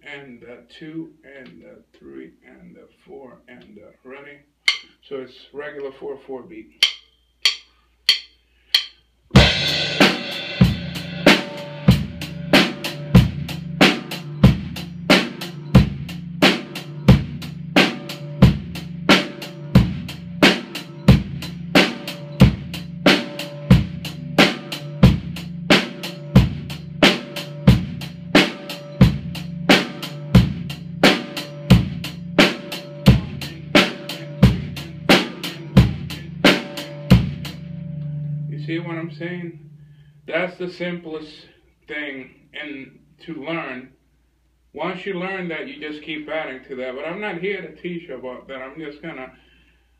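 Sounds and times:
drum kit playing a beat: 4.7 - 5.0, 6.7 - 39.2.

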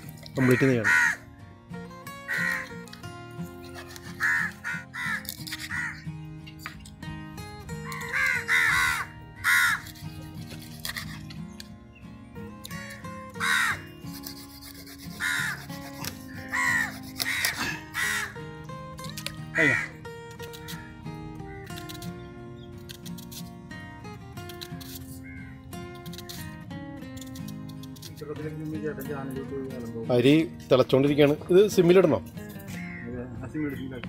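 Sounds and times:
background music: 0.0 - 34.0
crow cawing: 0.2 - 1.3, 2.1 - 3.0, 3.6 - 6.2, 7.7 - 10.2, 12.6 - 21.8, 24.8 - 26.1, 32.7 - 33.4.

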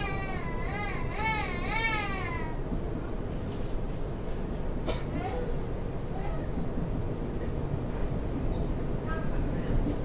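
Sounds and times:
train carriage rumble: 0.0 - 10.0.

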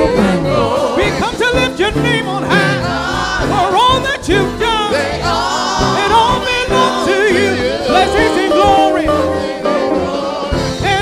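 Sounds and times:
drum kit played with sticks: 0.0 - 11.0
voices singing gospel: 0.0 - 11.0.

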